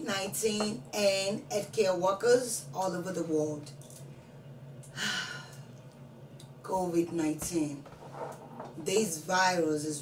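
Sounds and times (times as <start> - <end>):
woman speaking: 0.0 - 3.8, 6.6 - 10.0.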